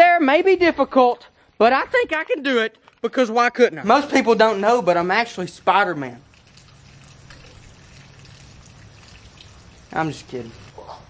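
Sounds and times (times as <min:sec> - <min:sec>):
water trickling: 0:02.2 - 0:11.0.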